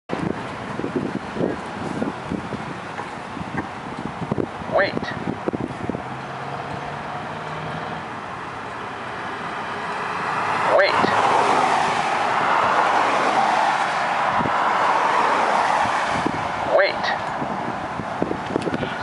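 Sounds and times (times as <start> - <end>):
passing cars: 0.1 - 19.0
recorded voice from crossing button: 4.7 - 5.2, 10.7 - 11.2, 16.7 - 17.2.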